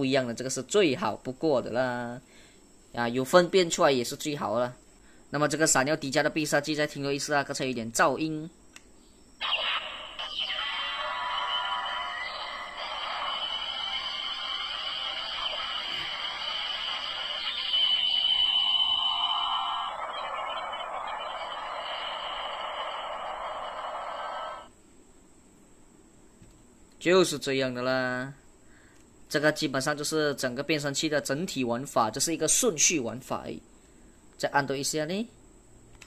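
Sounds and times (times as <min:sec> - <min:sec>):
toy electronic sound effect: 0:09.4 - 0:24.7.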